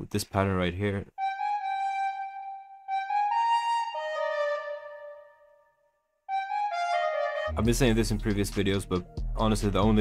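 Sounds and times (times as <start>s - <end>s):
recorder playing slow melody: 1.2s - 7.6s.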